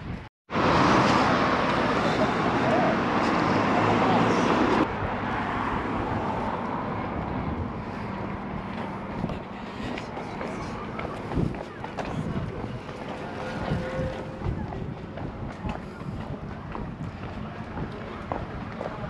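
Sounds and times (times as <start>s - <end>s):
road traffic noise: 0.5s - 19.0s.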